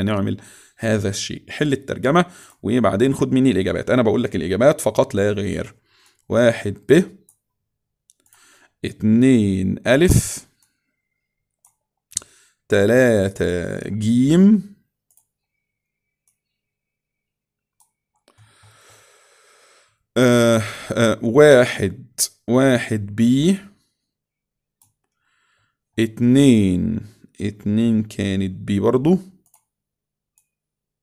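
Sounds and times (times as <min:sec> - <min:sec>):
man speaking: 0:00.0 - 0:07.2, 0:08.8 - 0:10.5, 0:12.7 - 0:14.8, 0:20.2 - 0:23.8, 0:26.0 - 0:29.4
computer mouse clicks: 0:08.1 - 0:08.4, 0:11.5 - 0:12.3, 0:15.1 - 0:15.5, 0:16.2 - 0:16.5, 0:17.7 - 0:18.8, 0:29.4 - 0:29.7.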